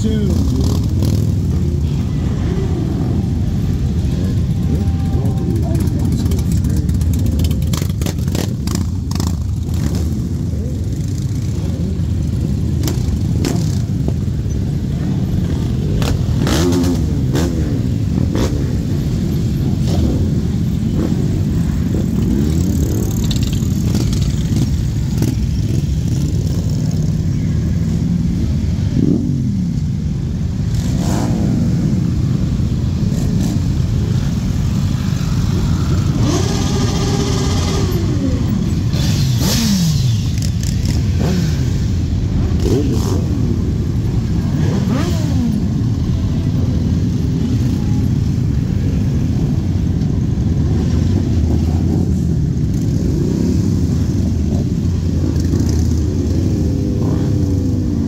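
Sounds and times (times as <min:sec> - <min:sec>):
motorcycle engine revving: 0:00.0 - 0:14.3, 0:15.4 - 0:27.2, 0:30.6 - 0:32.2, 0:33.0 - 0:47.8
motorcycles rumbling past: 0:00.0 - 0:28.3, 0:30.6 - 0:58.0.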